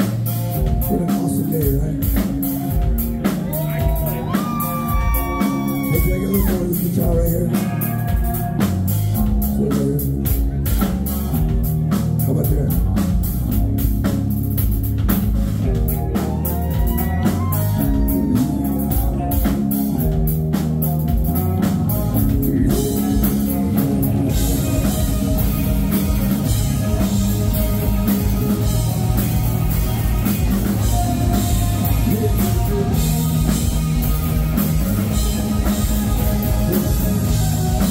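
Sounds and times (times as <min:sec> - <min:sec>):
bass guitar: 0:00.0 - 0:37.9
drum kit beat: 0:00.0 - 0:37.9
electric guitar: 0:00.0 - 0:37.9.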